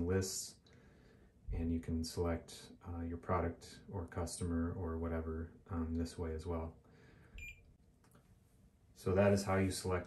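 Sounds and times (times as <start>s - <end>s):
faint electronic beep: 7.4s - 7.7s.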